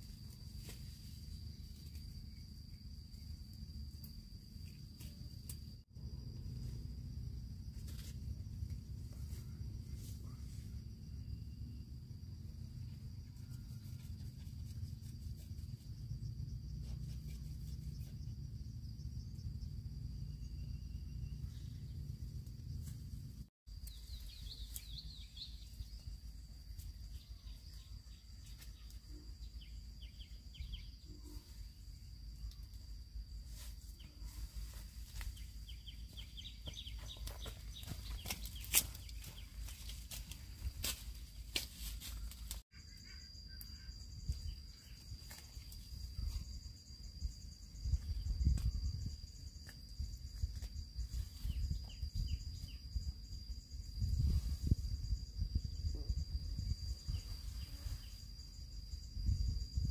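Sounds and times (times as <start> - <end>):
insect drone: 0.0 - 59.9
weeds being pulled and snapped: 37.8 - 42.6
low wind rumble: 45.9 - 59.9.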